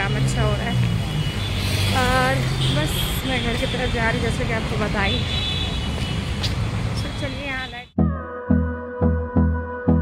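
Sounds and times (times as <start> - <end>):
voices: 1.9 - 5.3.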